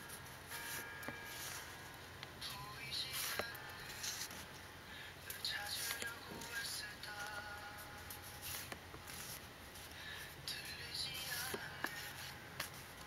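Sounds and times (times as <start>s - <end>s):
paper cards shuffling: 0.6s - 1.7s, 3.1s - 4.6s, 5.3s - 13.0s.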